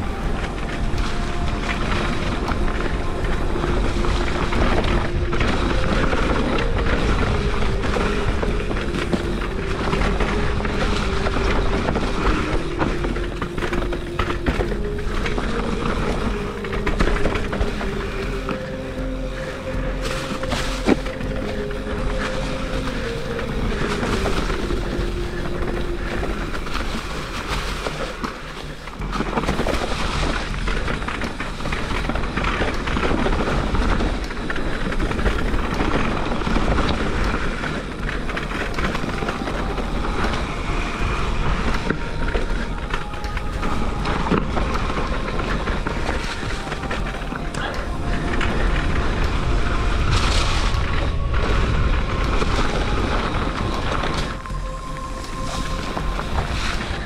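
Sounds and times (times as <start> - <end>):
bike rattling: 0.0 - 57.0.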